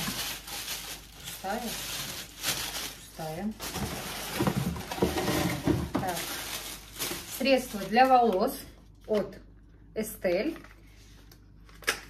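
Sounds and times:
packing paper rustling and crinkling: 0.0s - 9.2s.

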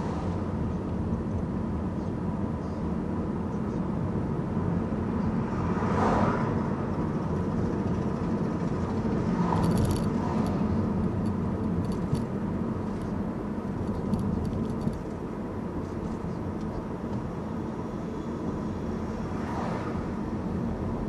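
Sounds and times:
car driving road noise: 0.0s - 21.0s.

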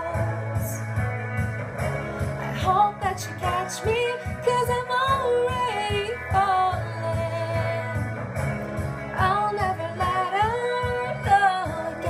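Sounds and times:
instrumental backing track: 0.0s - 12.0s
woman singing pop ballad: 0.0s - 12.0s.

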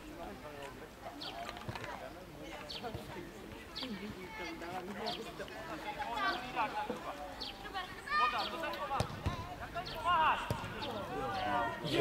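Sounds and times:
football being kicked: 9.0s - 9.6s, 10.4s - 10.8s.

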